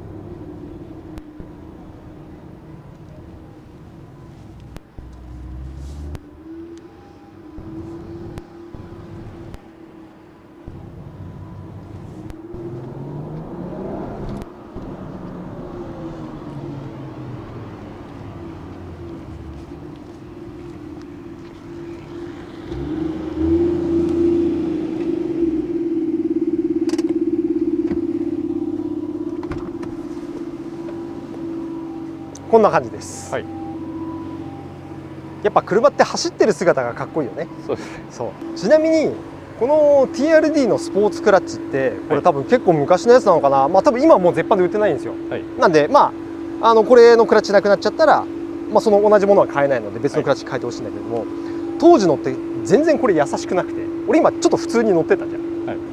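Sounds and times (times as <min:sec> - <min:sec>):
car engine driving through gears: 0:00.0 - 0:55.9.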